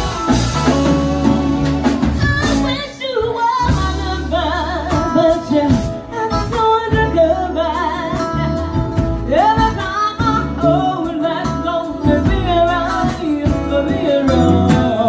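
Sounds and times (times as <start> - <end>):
drum kit: 0.0 - 15.0
electric bass: 0.0 - 15.0
electric guitar: 0.0 - 15.0
woman singing with vibrato: 0.0 - 15.0.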